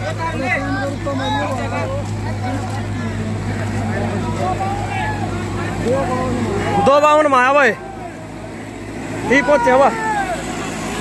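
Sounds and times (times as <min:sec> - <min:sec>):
onlookers' voices: 0:00.0 - 0:11.0
tractor diesel engine under load: 0:00.0 - 0:11.0.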